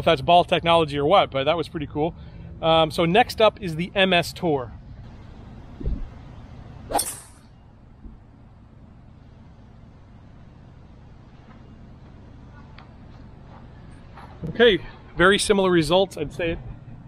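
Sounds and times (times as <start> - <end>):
faint background noise: 0.0 - 17.0.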